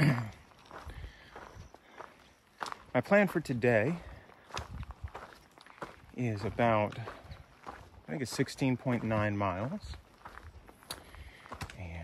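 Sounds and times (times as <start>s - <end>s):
footsteps on dirt trail: 0.0s - 12.0s.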